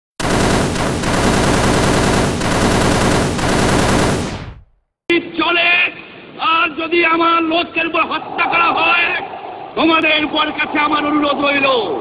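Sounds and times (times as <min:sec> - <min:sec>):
loud dense rattling: 0:00.2 - 0:04.7.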